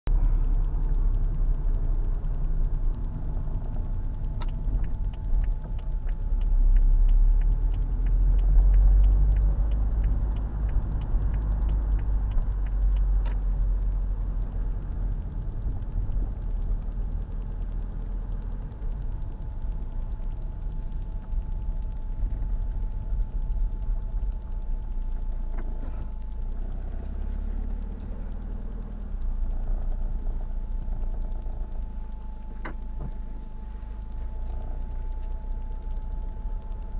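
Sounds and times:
car engine and road rumble: 0.0s - 36.9s
light ticking: 0.1s - 36.9s.

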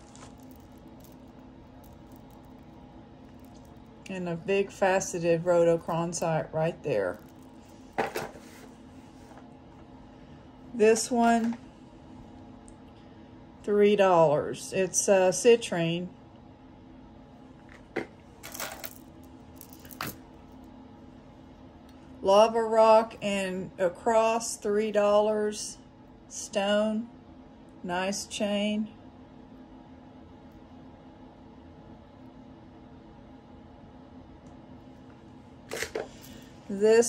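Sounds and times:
beaded necklace rustling clatter: 0.0s - 4.1s, 7.0s - 8.6s, 18.4s - 20.6s
faint steady hum: 0.0s - 37.0s
metal chain and beads jingling: 18.4s - 20.2s.

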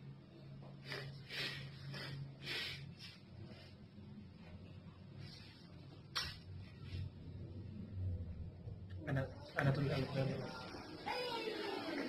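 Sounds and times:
steady low hum: 0.0s - 11.1s
person breathing hard: 0.8s - 3.2s.

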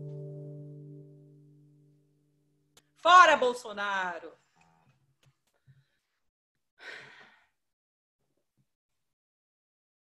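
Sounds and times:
person sighing: 6.8s - 7.6s.

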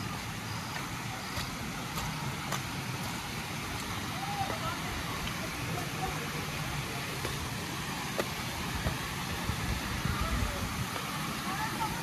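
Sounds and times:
steady hiss: 0.0s - 12.0s
wind rumble on microphone: 8.7s - 11.0s.

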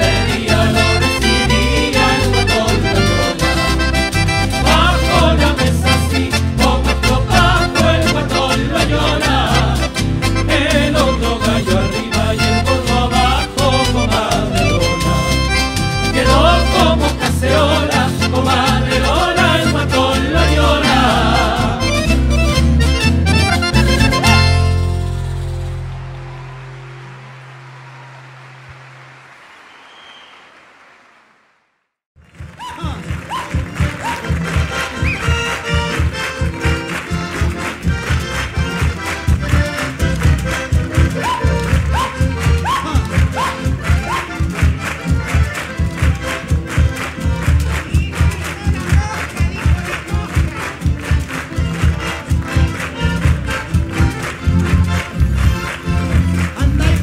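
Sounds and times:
accordion: 0.0s - 27.5s, 33.4s - 57.0s
folk dance band playing: 0.0s - 29.3s, 32.3s - 57.0s.

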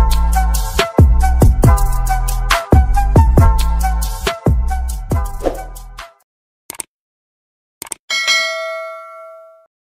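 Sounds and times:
bright bell ding: 8.1s - 9.7s.

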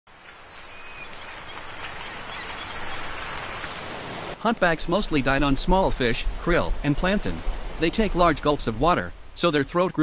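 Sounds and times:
fish splashing at water surface: 0.2s - 4.4s.

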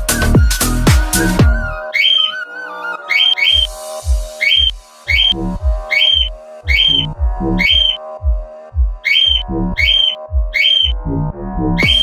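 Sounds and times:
kick drum beat: 0.0s - 1.6s, 3.6s - 11.0s, 11.8s - 12.0s
electronic backing track: 0.0s - 2.4s, 3.0s - 11.1s, 11.8s - 12.0s
parrot chirps and whistles: 1.8s - 3.8s, 4.4s - 8.0s, 9.0s - 10.9s, 11.8s - 12.0s.

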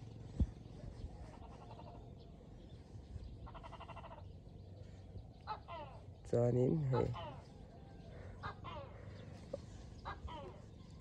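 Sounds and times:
distant animal calls: 0.0s - 2.4s, 3.3s - 11.0s
background hum: 0.0s - 11.0s.

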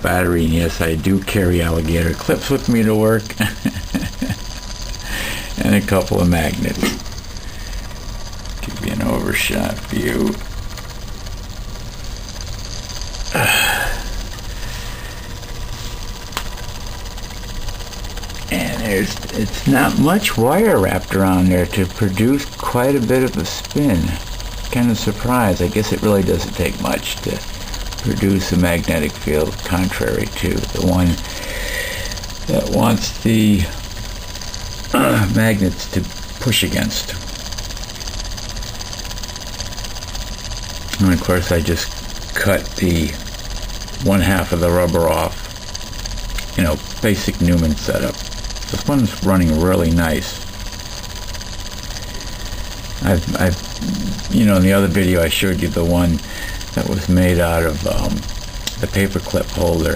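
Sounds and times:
small electric motor running: 0.0s - 59.9s.

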